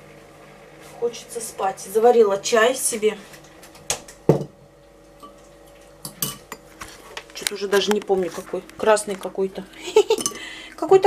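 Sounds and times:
mug and kitchenware clinking: 6.1 - 6.7, 10.1 - 10.4.

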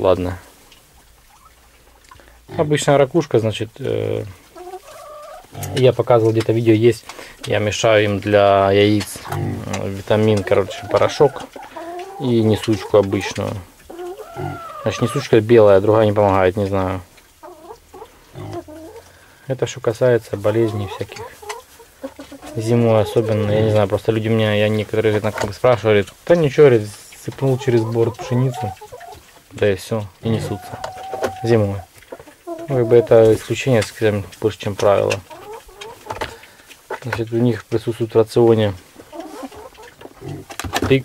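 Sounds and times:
hens clucking: 0.0 - 41.0
short wavering hen calls: 32.1 - 33.1.

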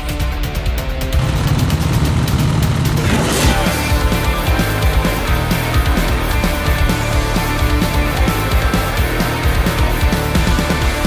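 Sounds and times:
music: 0.0 - 11.0
dirt bike engines running: 0.6 - 11.0.

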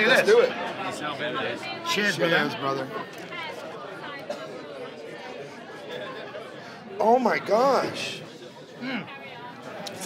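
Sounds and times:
chatter of voices: 0.0 - 10.0.

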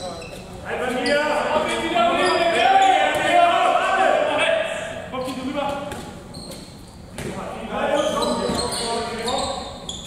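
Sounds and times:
players calling out in echoing hall: 0.0 - 10.0
ball bouncing on hall floor: 2.8 - 3.4, 5.2 - 7.5, 8.1 - 10.0.

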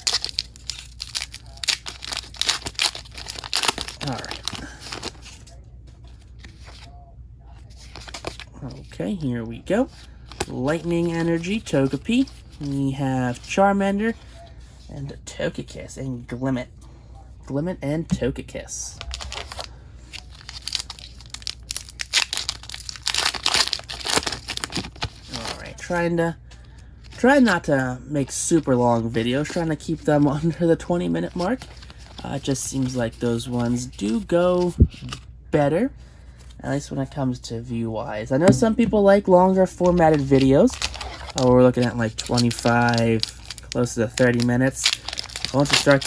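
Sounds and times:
foil wrapper being torn open: 0.0 - 5.2, 19.0 - 25.5, 40.1 - 41.4, 42.2 - 46.0.

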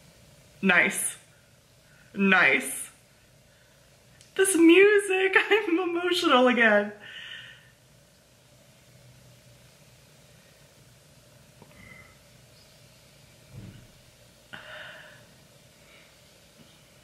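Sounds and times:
person breathing faintly: 7.0 - 7.8, 14.5 - 17.0
soft low thump: 13.5 - 14.0.

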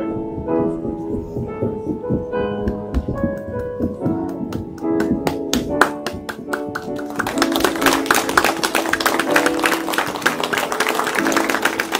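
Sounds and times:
grand piano melody: 0.0 - 11.9
people clapping: 4.3 - 11.9.

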